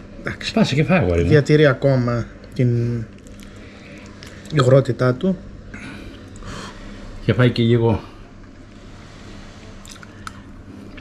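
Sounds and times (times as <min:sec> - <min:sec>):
person chewing pasta: 0:09.8 - 0:11.0.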